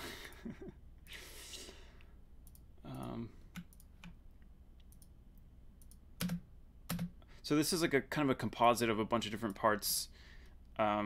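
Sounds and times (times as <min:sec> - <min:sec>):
person laughing: 0:00.0 - 0:00.8
computer clicks: 0:02.4 - 0:04.2, 0:04.8 - 0:05.1, 0:05.8 - 0:07.2.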